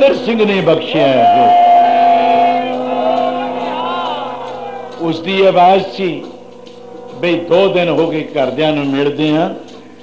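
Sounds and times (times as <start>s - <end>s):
harmonium note: 0.0s - 6.0s
low sustained drone: 0.0s - 10.0s.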